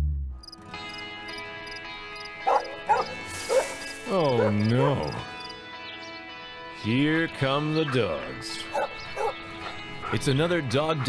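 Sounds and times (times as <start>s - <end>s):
background music chord: 0.1s - 11.0s
dog barks: 2.4s - 4.7s, 8.7s - 10.2s.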